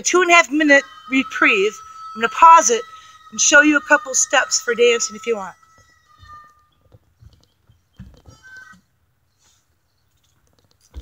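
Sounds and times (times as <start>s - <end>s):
footsteps on wooden deck: 5.8s - 8.8s.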